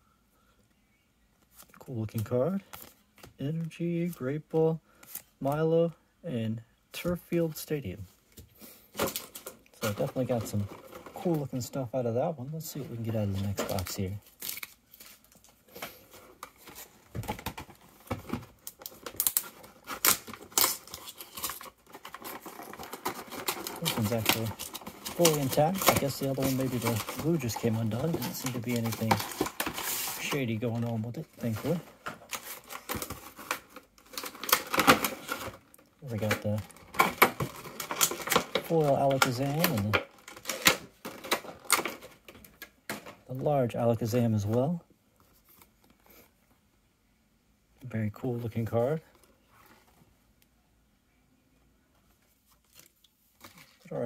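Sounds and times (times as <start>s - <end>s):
cards and packaging rustling: 8.4s - 46.4s, 52.0s - 54.0s.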